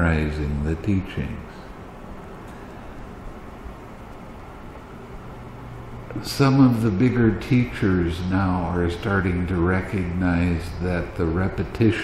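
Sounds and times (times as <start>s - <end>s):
even hiss: 0.0s - 12.0s
faint low hum: 0.0s - 12.0s.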